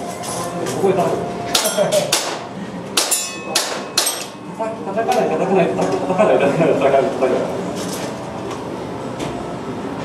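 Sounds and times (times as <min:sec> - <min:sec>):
indoor background noise: 0:00.0 - 0:10.0.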